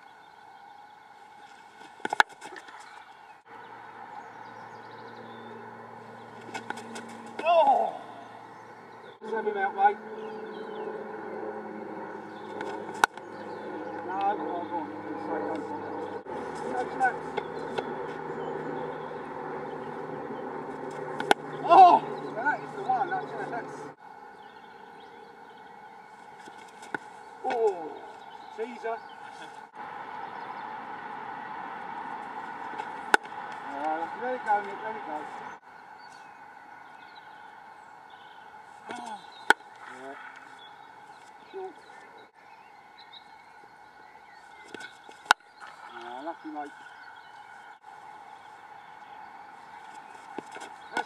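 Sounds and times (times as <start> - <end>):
cricket bat striking ball: 12.5 - 13.2, 20.9 - 21.6, 32.7 - 33.4, 38.9 - 39.9.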